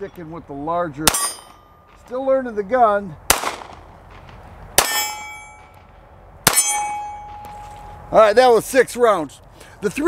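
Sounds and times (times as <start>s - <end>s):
pistol shots: 1.0s - 2.0s, 3.3s - 7.4s
steel target ringing clang: 1.0s - 2.0s, 4.8s - 5.8s, 6.4s - 7.7s.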